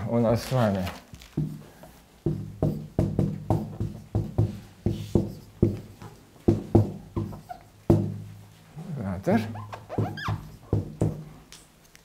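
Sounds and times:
marker knocking on whiteboard: 1.4 - 8.3, 9.5 - 11.4.

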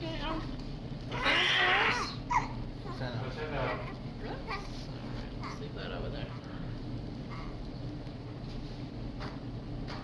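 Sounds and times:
newborn baby crying: 1.1 - 2.6.

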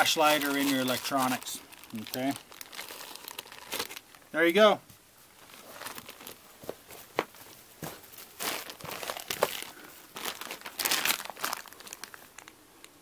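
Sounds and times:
plastic bag crinkling: 0.0 - 4.4, 5.3 - 7.4, 8.1 - 12.6.

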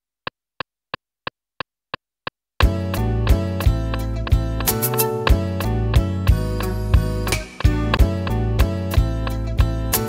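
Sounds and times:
metronome clicks: 3.9 - 5.2.

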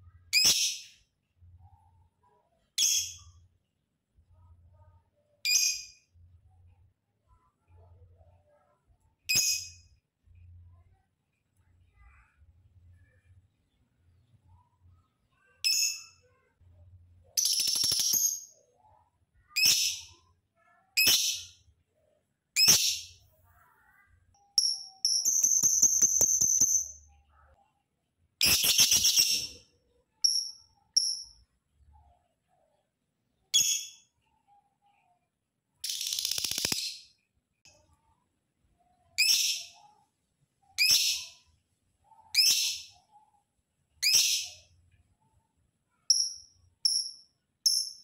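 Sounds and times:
lovebird chirping: 17.4 - 18.6, 22.6 - 27.1, 28.4 - 29.6, 30.2 - 31.4, 35.8 - 37.1, 46.1 - 48.0.

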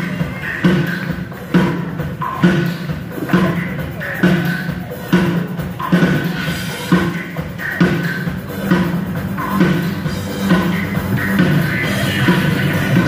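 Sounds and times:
drum kit beat: 0.0 - 13.0
live rock band: 0.0 - 13.0.

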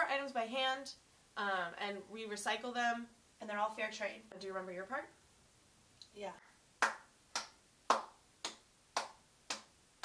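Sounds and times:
fingers snapping a beat: 6.8 - 9.7.

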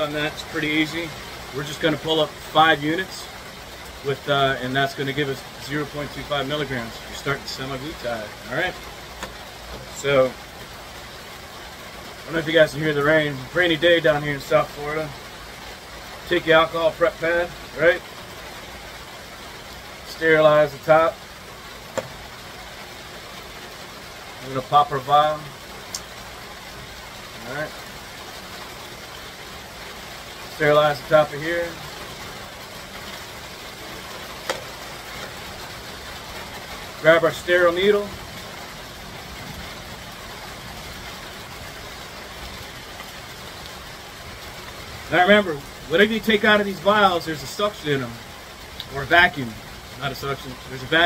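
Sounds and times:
rain hissing: 0.0 - 51.0.

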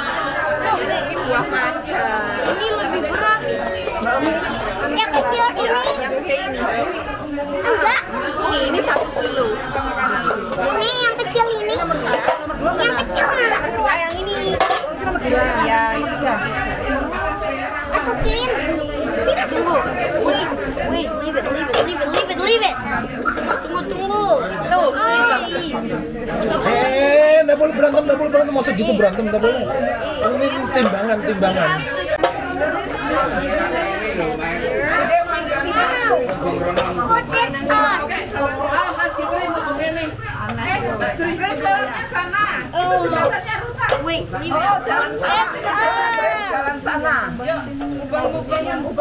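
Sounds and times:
children chattering: 0.0 - 49.0.

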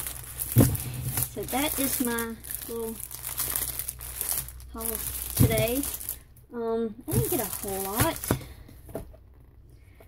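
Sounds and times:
plastic packaging crinkling: 0.0 - 6.3, 7.1 - 8.6.

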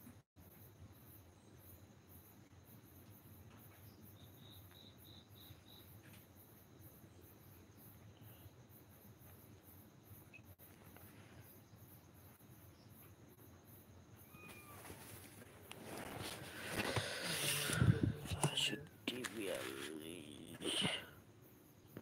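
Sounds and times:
insects chirping: 0.0 - 22.0.

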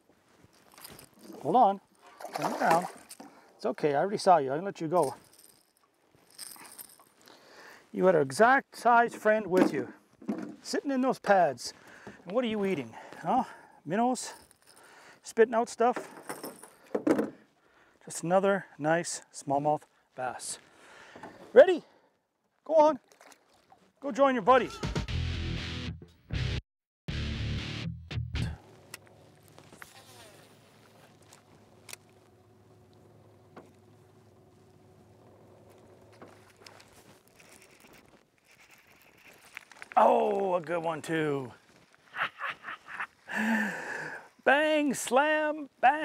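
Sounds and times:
handling rustling: 0.1 - 1.5, 34.6 - 40.4
faint steady hum: 28.6 - 39.6.

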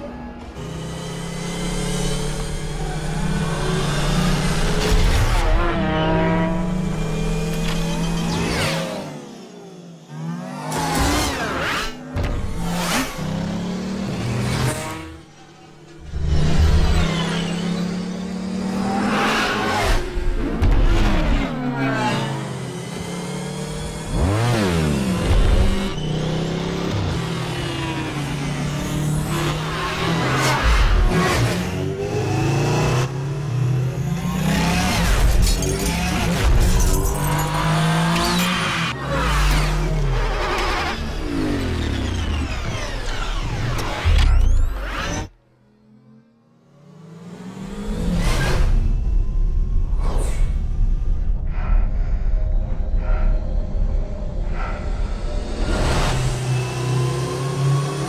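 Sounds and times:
low synth score: 38.9 - 58.0.

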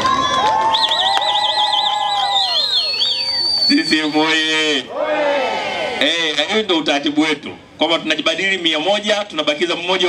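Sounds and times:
lower steady whistle tones: 0.2 - 4.5
high warbling whistle: 0.7 - 4.4.

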